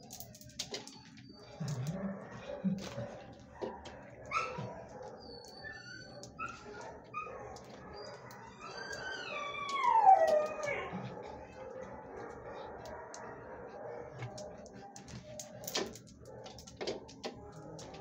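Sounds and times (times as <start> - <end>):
dog howling: 1.2 - 14.8
dog whining: 4.3 - 11.3.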